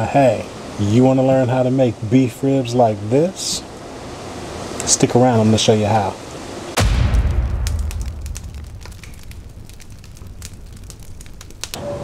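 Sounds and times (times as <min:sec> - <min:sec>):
fire crackling: 0:02.2 - 0:11.8
deep boom rumbling: 0:06.8 - 0:11.8.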